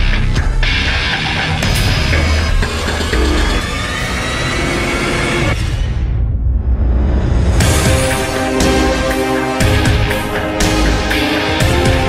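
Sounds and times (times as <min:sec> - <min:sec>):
dramatic cinematic music: 0:00.0 - 0:12.0.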